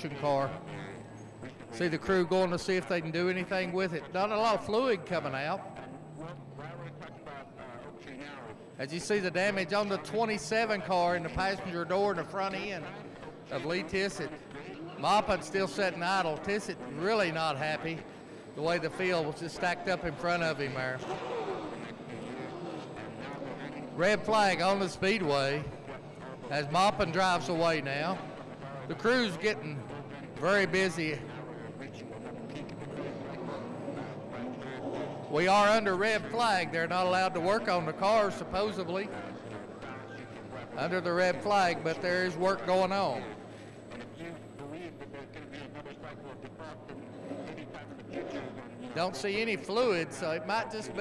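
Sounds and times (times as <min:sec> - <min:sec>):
faint distant voices: 0:00.0 - 0:51.0
track background noise: 0:00.0 - 0:51.0.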